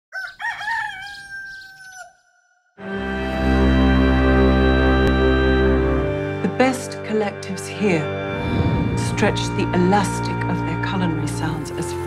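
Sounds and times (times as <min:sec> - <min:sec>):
rooster crowing: 0:00.1 - 0:02.3.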